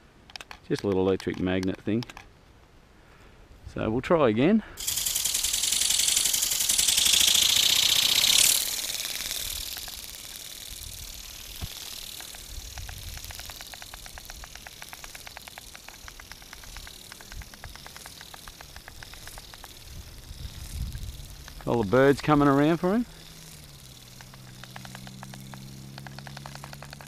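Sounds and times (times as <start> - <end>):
rapid wingbeat ticking: 4.8 - 27.0
toy bird wings buzzing: 4.8 - 27.0.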